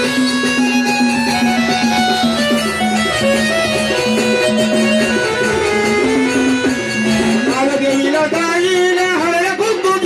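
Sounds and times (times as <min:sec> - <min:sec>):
held drone: 0:00.0 - 0:07.6
wavering melody: 0:00.0 - 0:08.6
quick percussion strokes: 0:00.0 - 0:09.2.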